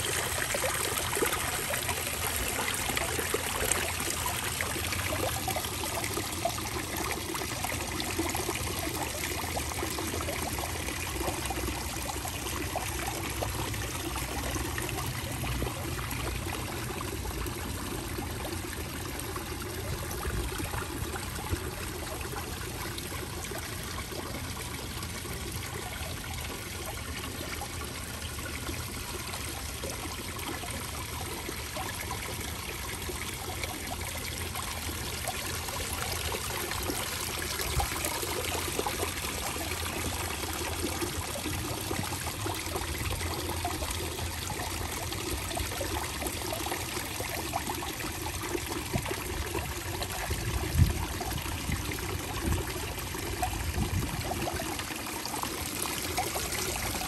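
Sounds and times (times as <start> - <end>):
fountain water trickling over stones: 0.0 - 57.0.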